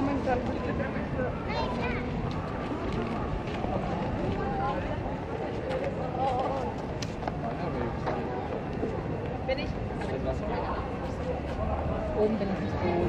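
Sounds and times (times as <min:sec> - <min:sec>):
city background hum: 0:00.0 - 0:13.0
passers-by talking: 0:00.0 - 0:13.0.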